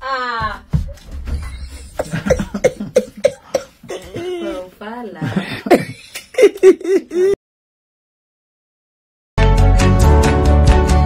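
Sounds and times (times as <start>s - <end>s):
woman laughing: 1.4s - 7.4s.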